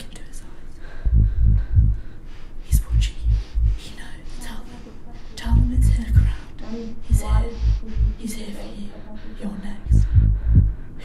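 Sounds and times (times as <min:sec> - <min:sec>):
indistinct whispering voices: 0:00.0 - 0:11.0
steady low hum: 0:00.0 - 0:11.0
deep heartbeat-like thumps: 0:01.0 - 0:02.1, 0:02.7 - 0:04.0, 0:05.3 - 0:10.9.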